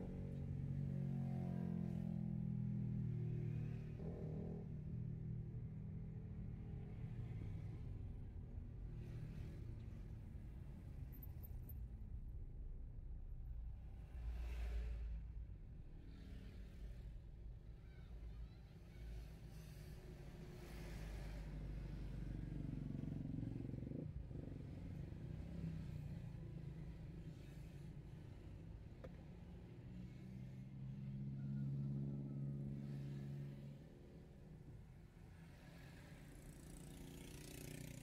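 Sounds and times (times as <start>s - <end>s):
motorcycles passing close: 35.5s - 38.0s.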